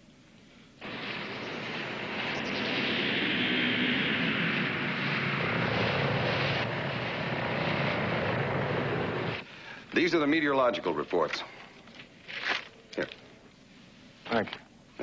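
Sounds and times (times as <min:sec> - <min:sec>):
low hum: 0:00.0 - 0:14.2
flying saucer drone: 0:00.8 - 0:09.5.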